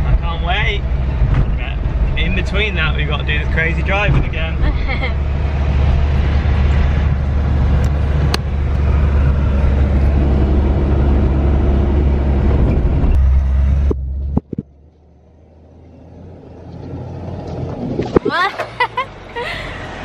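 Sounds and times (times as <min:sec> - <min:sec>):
engine and tyres rumbling: 0:00.0 - 0:20.0.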